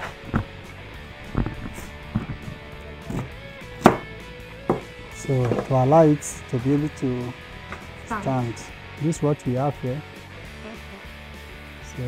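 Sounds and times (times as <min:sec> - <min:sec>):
faint music: 0:00.0 - 0:12.0
knife chopping onto table: 0:03.1 - 0:04.1.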